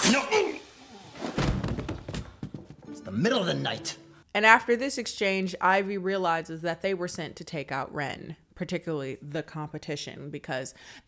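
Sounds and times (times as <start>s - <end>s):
film background music: 2.9s - 4.2s.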